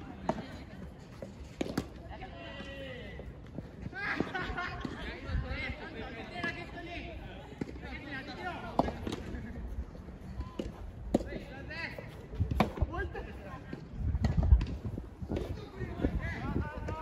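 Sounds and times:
rackets striking tennis ball: 0:01.2 - 0:02.0, 0:08.7 - 0:09.4, 0:12.4 - 0:12.9.

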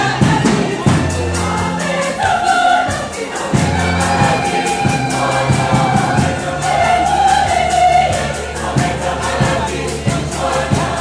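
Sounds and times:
choir singing gospel in harmony: 0:00.0 - 0:11.0
percussion beat: 0:00.0 - 0:11.0
bass line: 0:00.1 - 0:11.0.

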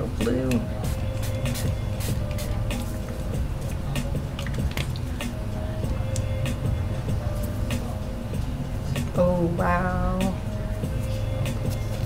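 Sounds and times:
compressor humming: 0:00.0 - 0:12.0.

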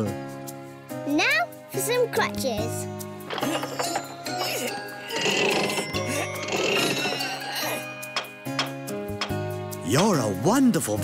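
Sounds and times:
children's background music: 0:00.0 - 0:11.0.

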